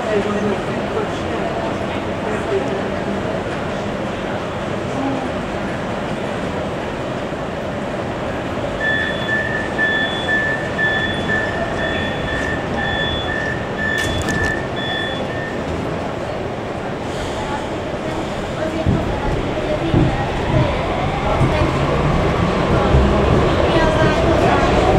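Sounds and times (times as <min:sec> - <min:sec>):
train and station hum: 0:00.0 - 0:24.9
door warning beeps: 0:08.8 - 0:15.7
sliding doors shutting: 0:12.4 - 0:15.4.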